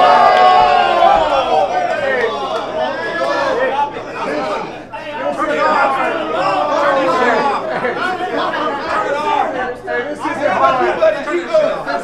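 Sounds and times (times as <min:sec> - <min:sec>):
crowd talking and shouting: 0:00.0 - 0:12.0.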